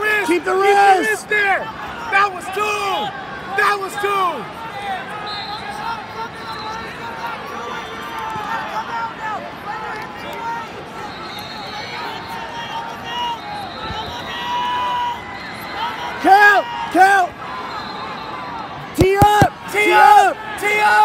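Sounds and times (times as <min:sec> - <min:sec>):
crowd shouting: 0:11.9 - 0:21.0.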